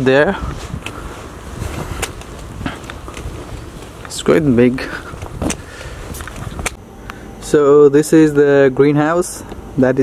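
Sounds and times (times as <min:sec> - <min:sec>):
footsteps on brick paving: 0:00.4 - 0:06.8.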